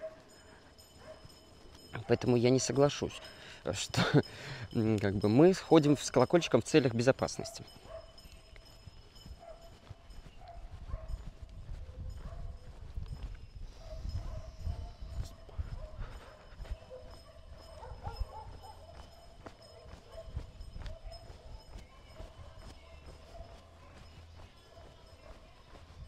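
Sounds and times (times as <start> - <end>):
footsteps on pavement: 0.0 - 4.1, 7.2 - 26.0.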